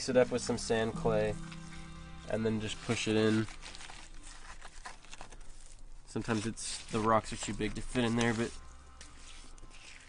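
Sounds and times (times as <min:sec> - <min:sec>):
gritty mix scraping against brick: 0:02.4 - 0:10.0.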